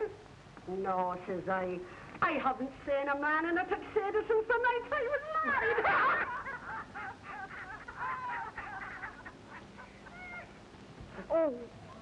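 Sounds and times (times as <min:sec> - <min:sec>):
people laughing: 0:05.1 - 0:10.6.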